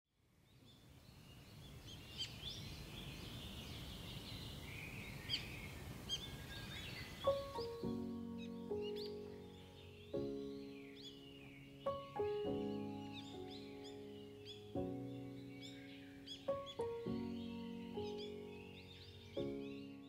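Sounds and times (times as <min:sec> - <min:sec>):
songbirds chirping: 0:00.2 - 0:20.0
soft music with ringing notes: 0:07.2 - 0:20.0.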